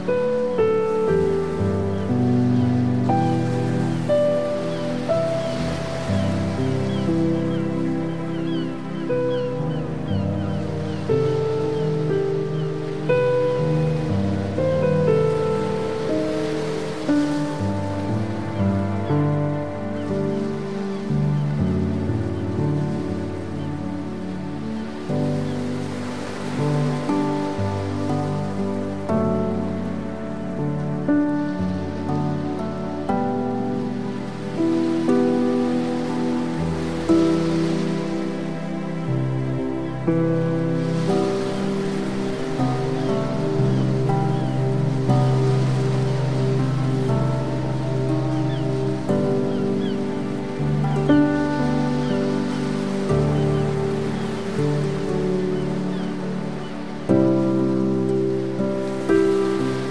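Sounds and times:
soft instrumental worship music: 0.0 - 59.9.

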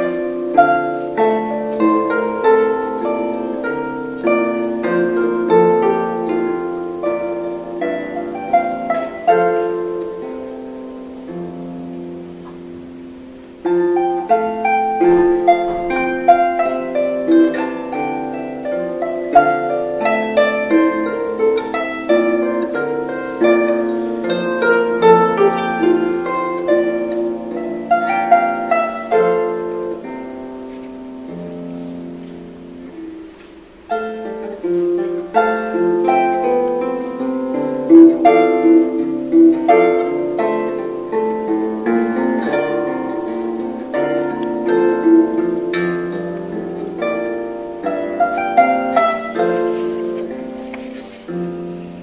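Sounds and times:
harp plucked notes: 0.0 - 52.0.

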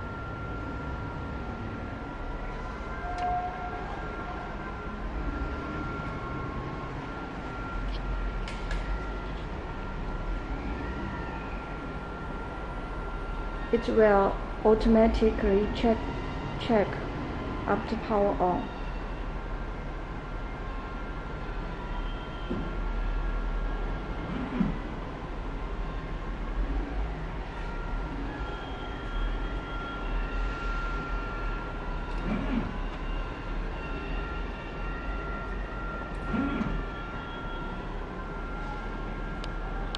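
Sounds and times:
faint high whine: 0.0 - 39.9
mechanical hum and hiss: 0.0 - 39.9.

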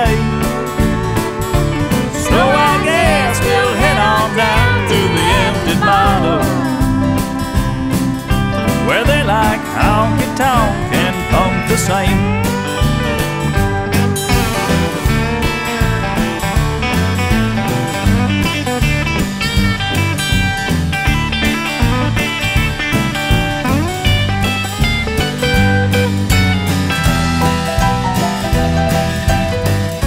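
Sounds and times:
bass: 0.0 - 30.0
steady drum beat: 0.0 - 30.0
twangy guitar lead: 0.0 - 30.0.

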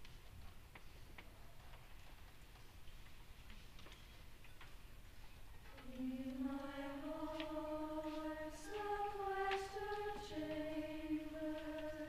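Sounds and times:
faint irregular clicks: 0.0 - 12.0
choir singing: 5.8 - 12.0.

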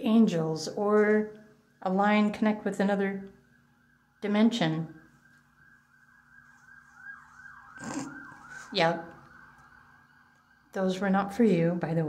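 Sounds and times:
faint wailing emergency siren: 0.0 - 12.0.

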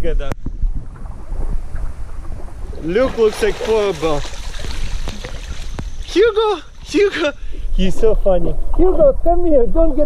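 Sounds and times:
wind rumble on microphone: 0.0 - 10.0
water sloshing and splashing: 1.0 - 7.3.

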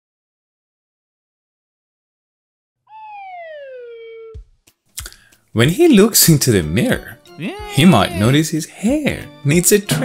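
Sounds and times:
high tone gliding down: 2.9 - 4.4.

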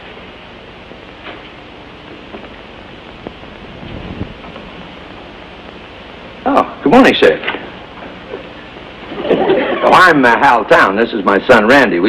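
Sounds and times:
television soundtrack hiss: 0.0 - 12.0.

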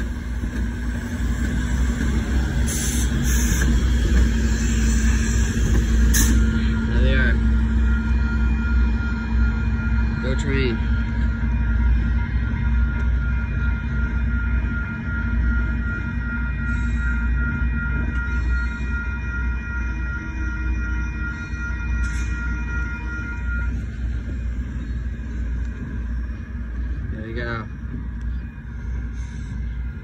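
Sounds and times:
diesel train rumbling: 0.0 - 30.0
steady high ringing tones: 0.0 - 30.0.

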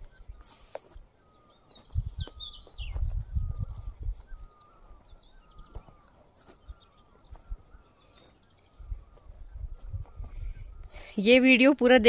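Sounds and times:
birds chirping: 0.0 - 12.0
bird whistled notes: 0.1 - 6.0.

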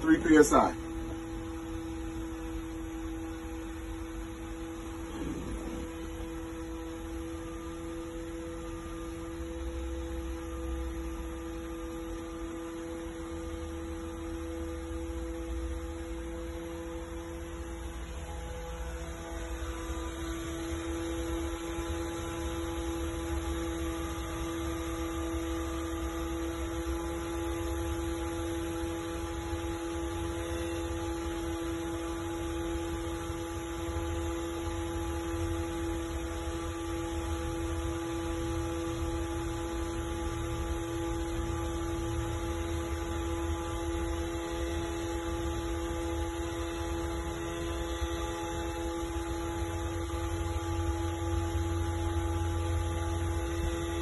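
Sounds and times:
steady hum with low rumble: 0.0 - 54.0.

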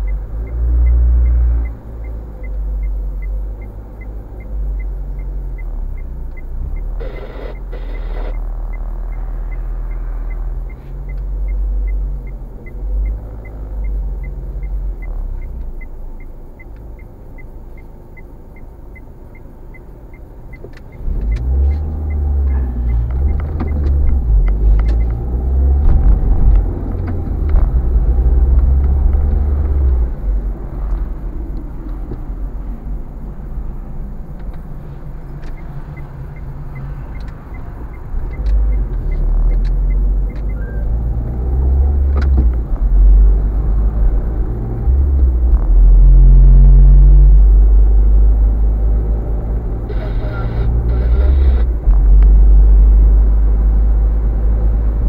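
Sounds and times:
turn signal ticking: 0.0 - 55.0
car engine idling: 1.7 - 25.3, 46.8 - 54.3.

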